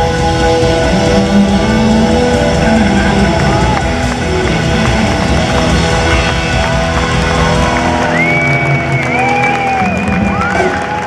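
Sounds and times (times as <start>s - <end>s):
electric guitar bent notes: 0.0s - 11.0s
live blues-rock band: 0.0s - 11.0s.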